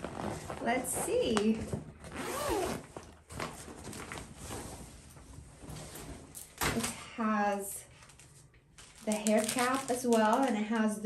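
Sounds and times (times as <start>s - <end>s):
zipper being pulled open: 0.0s - 1.4s, 2.0s - 3.2s.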